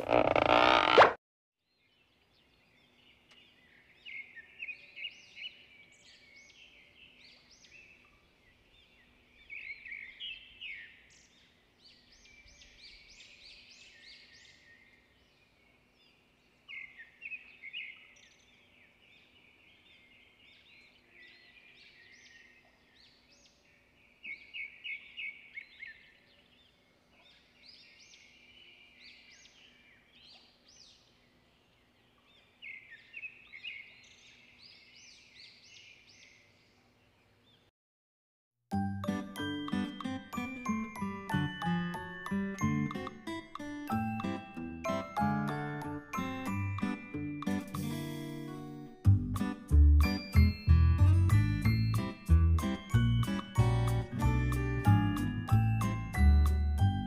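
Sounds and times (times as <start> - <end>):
birds chirping and twittering: 1.6 - 37.7.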